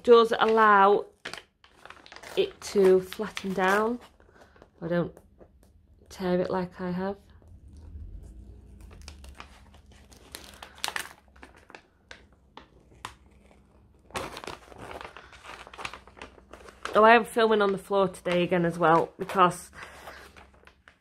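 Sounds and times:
paper sheet crinkling as peeled: 0.0 - 4.8, 7.6 - 21.0.

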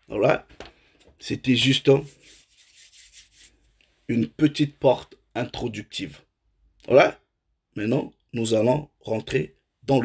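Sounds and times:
faint rustling and rubbing: 0.4 - 4.3.

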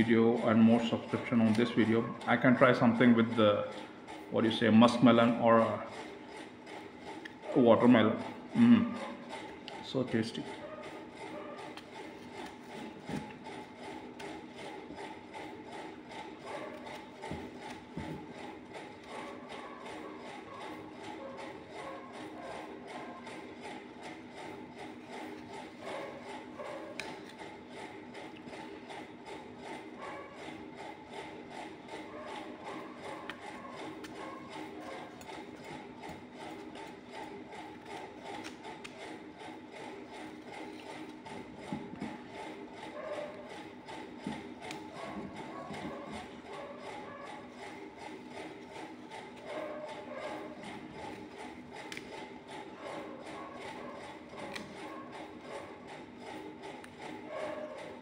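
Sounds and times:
mechanical whirr with rattle: 0.0 - 58.0.

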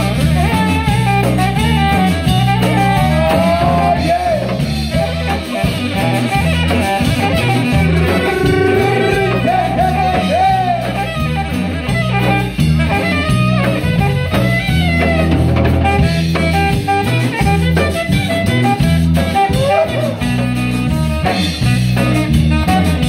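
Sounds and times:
drum kit: 0.0 - 23.0
electric guitar: 0.0 - 23.0
live band playing dance music: 0.0 - 23.0
sliding melody lines: 6.8 - 10.1.

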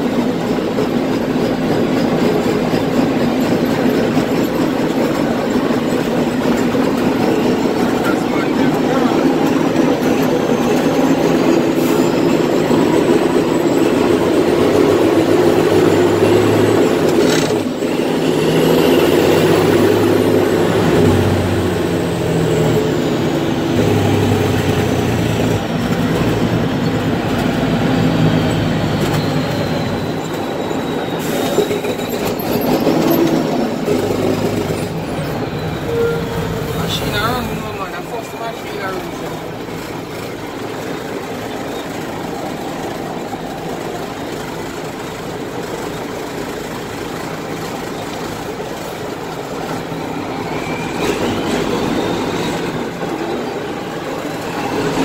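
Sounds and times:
road and tyre noise: 0.0 - 55.0
truck engine drone: 0.0 - 55.0.

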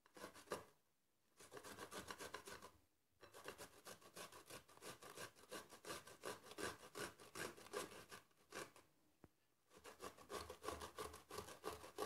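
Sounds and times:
cucumber rasping on metal grater: 1.4 - 8.8, 9.7 - 12.0.

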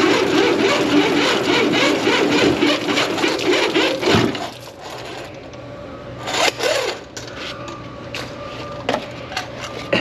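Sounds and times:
drain snake cable scraping: 0.0 - 5.3
steady low hum: 0.0 - 10.0.

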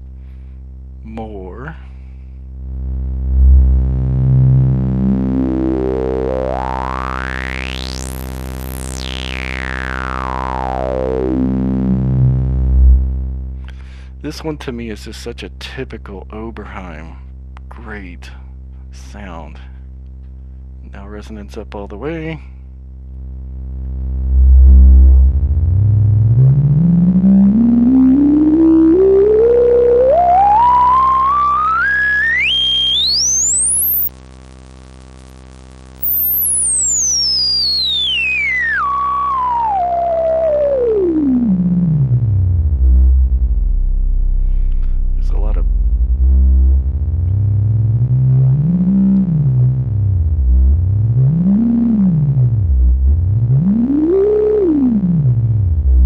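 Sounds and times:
synth filter sweep over sawtooth drone: 3.1 - 13.2, 24.2 - 34.1, 36.0 - 56.0.

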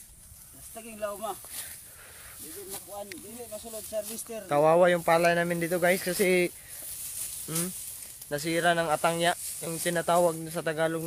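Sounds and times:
rustle of rice stalks: 0.0 - 11.0.

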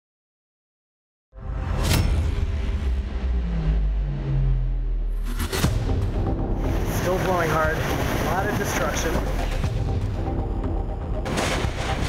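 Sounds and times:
sharp crack: 11.2 - 12.0.

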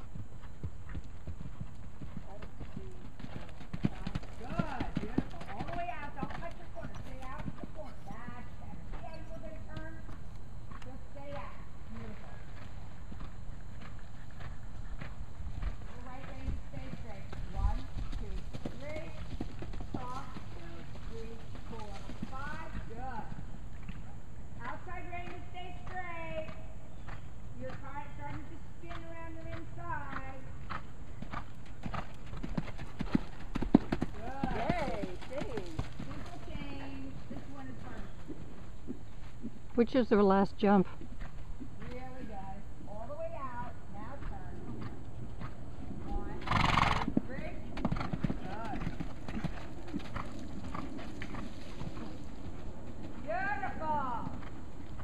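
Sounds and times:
horse hoofbeats on sand: 0.0 - 23.4, 24.6 - 39.8, 40.8 - 55.0.

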